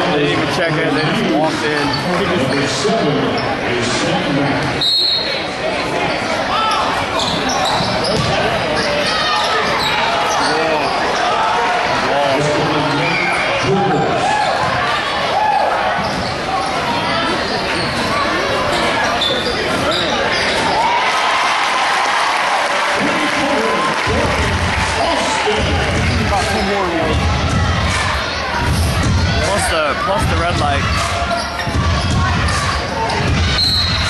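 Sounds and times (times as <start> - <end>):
crowd voices talking and calling: 0.0 - 34.0.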